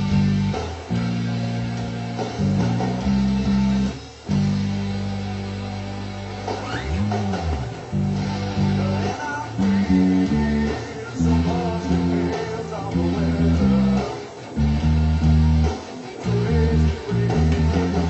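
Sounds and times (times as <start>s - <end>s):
electric bass guitar notes: 0.0s - 18.0s.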